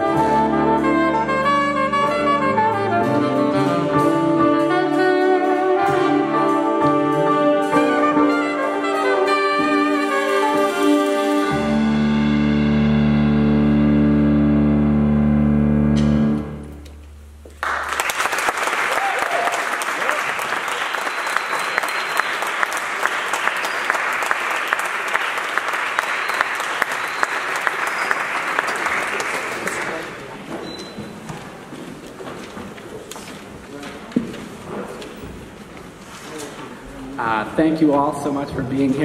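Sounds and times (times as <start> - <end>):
jazz big band chord: 0.0 - 17.4
audience applauding: 17.5 - 30.5.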